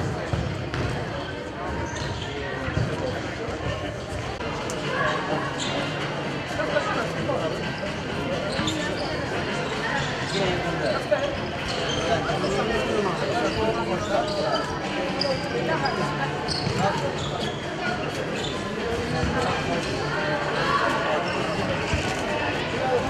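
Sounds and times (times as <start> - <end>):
chatter of many voices: 0.0 - 23.0.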